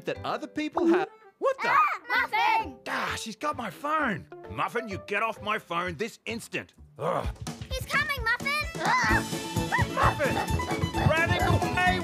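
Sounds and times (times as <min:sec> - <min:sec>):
background music: 0:00.0 - 0:12.0
cartoon dog yipping: 0:01.6 - 0:02.6, 0:08.7 - 0:11.1.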